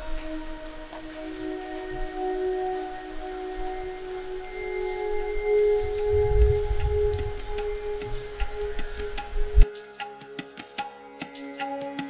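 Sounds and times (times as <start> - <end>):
sustained drone pad: 0.0 - 9.7
low rumbling bass: 6.0 - 8.4.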